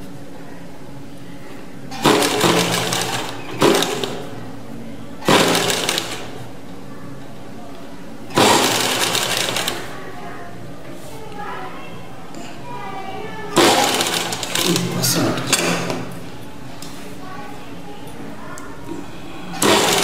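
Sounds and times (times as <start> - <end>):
sewing machine stitching: 1.9 - 4.3, 5.2 - 6.4, 8.3 - 9.9, 13.6 - 14.9, 19.5 - 20.0.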